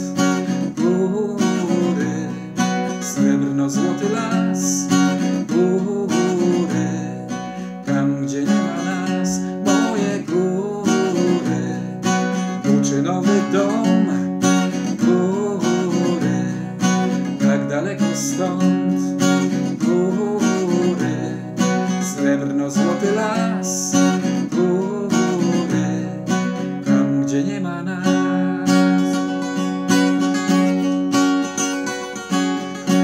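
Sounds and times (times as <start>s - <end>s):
man singing: 0.0s - 29.7s
acoustic guitar strumming: 0.0s - 33.0s.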